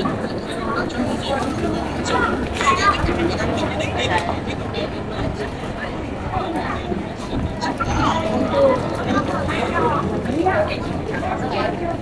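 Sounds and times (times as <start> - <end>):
passers-by talking: 0.0 - 12.0.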